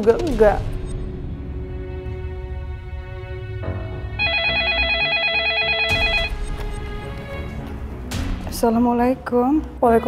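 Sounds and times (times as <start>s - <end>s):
telephone warbling ring: 4.2s - 6.4s.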